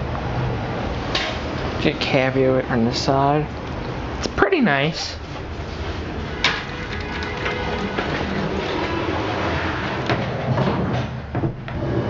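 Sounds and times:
elevator car running: 0.0 - 12.0.

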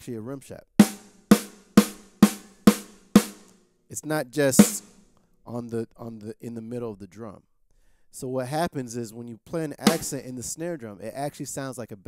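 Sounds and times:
snare drum rim shots: 0.8 - 3.5, 4.6 - 5.0, 9.9 - 10.2.

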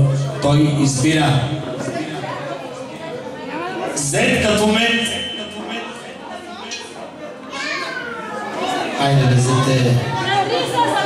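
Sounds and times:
children calling out and chattering: 1.6 - 4.0, 4.8 - 11.0.

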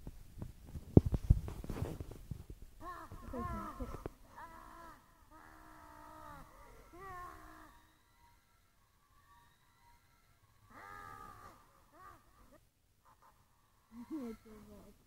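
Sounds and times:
faint pitch-bending vocal calls: 2.8 - 15.0.

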